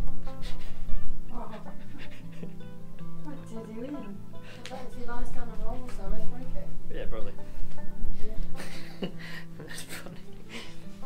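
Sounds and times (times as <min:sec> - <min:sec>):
background guitar music: 0:00.0 - 0:11.0
dog panting: 0:01.5 - 0:02.6.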